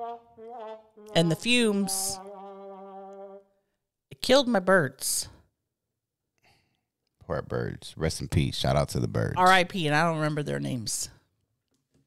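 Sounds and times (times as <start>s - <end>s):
person humming: 0.0s - 3.4s.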